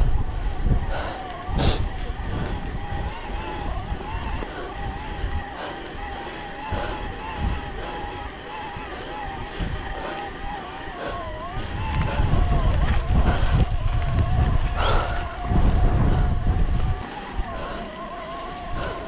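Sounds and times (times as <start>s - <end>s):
bike tyres rumbling on gravel: 0.0s - 19.0s
thin wavering whine: 0.0s - 19.0s
wind on microphone: 0.0s - 19.0s.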